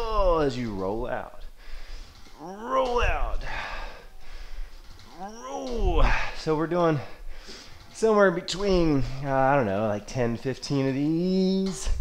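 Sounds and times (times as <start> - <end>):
breath: 1.6 - 2.2, 3.5 - 4.9, 7.1 - 7.9
man grunting oh under effort: 2.4 - 3.9.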